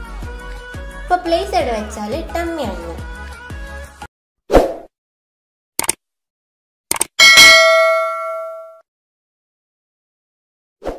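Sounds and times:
quick double clicks: 5.8s - 6.0s, 6.9s - 7.2s
bell ding: 7.2s - 8.8s.

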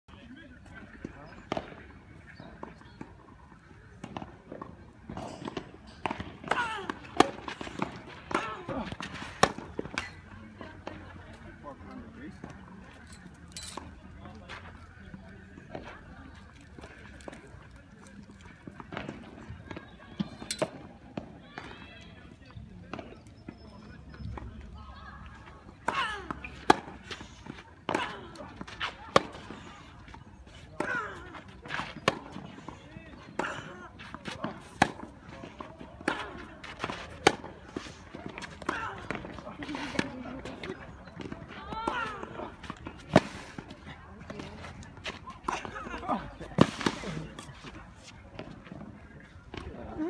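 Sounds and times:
people's voices: 0.1s - 50.0s.

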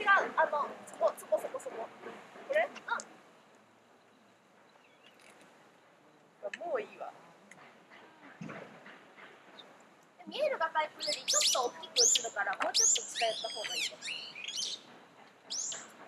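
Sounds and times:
people's voices: 0.0s - 3.2s, 6.0s - 14.2s
songbird chirping: 0.6s - 16.0s.

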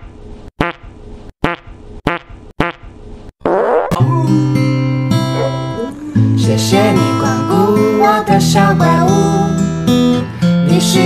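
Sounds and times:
comic fart sound effect: 0.6s - 4.2s
music: 4.0s - 11.0s.

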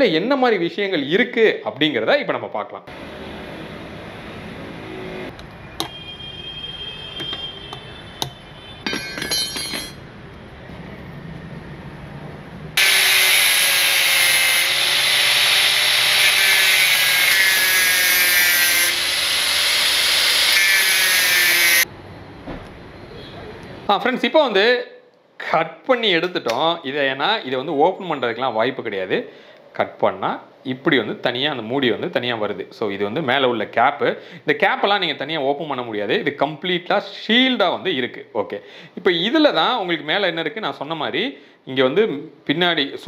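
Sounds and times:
angle grinder cutting steel: 12.8s - 21.9s.

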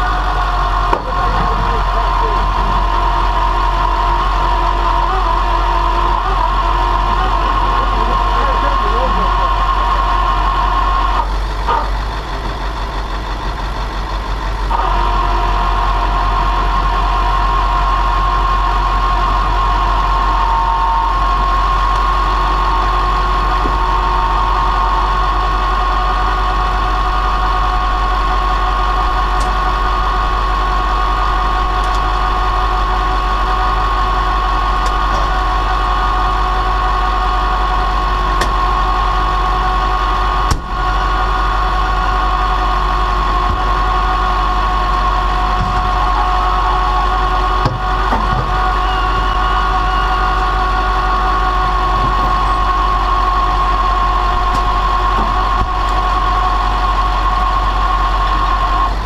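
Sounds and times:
truck engine running: 0.0s - 59.0s
winch high whine: 0.0s - 59.0s.

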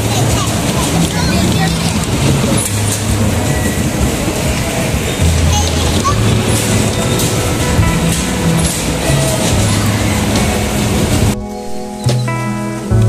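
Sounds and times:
bumper cars din: 0.0s - 13.0s
music playing: 0.0s - 13.0s
plucked guitar music: 0.0s - 13.0s.

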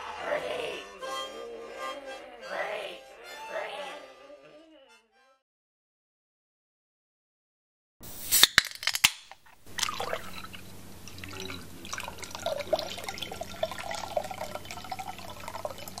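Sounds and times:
liquid dripping and trickling: 9.4s - 16.0s
steady low hum: 9.6s - 15.9s.

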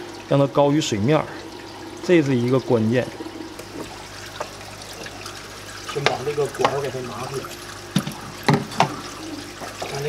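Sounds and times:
water pouring and splashing: 0.0s - 10.0s.

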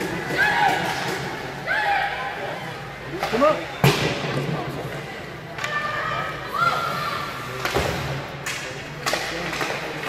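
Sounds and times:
hockey stick cracking on puck: 7.6s - 10.0s.

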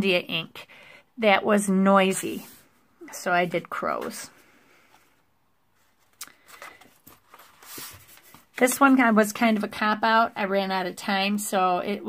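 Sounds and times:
soft paper rustle: 4.9s - 10.3s.

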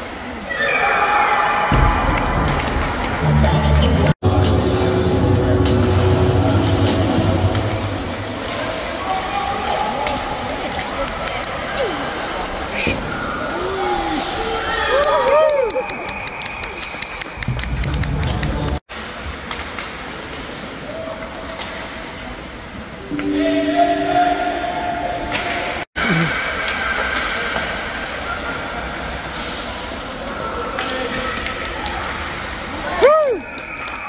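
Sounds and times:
hockey sticks and puck clacking: 18.5s - 21.9s, 29.3s - 32.2s.

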